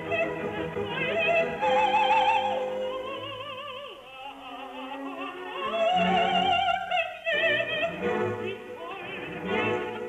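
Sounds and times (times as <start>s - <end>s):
opera singer with vibrato: 0.0s - 10.0s
orchestral accompaniment: 7.4s - 10.0s.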